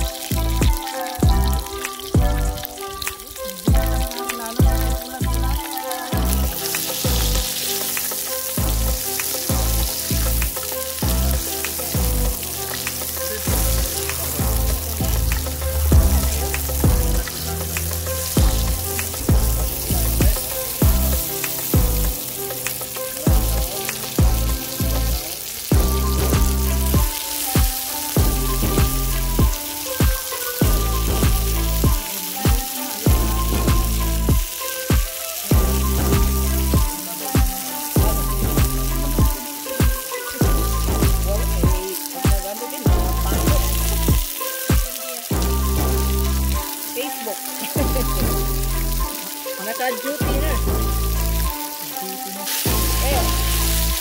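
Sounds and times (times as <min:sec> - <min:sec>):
vegetables sizzling in hot oil: 0:00.0 - 0:54.0.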